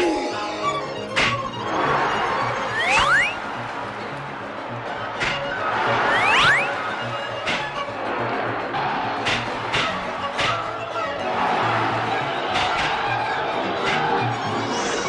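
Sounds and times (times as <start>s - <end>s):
cartoon music with pulsing rhythm: 2.4s - 8.2s.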